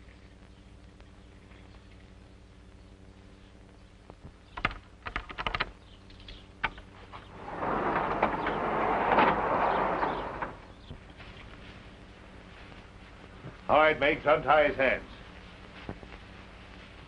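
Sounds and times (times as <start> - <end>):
scraping noise: 7.3 - 10.8.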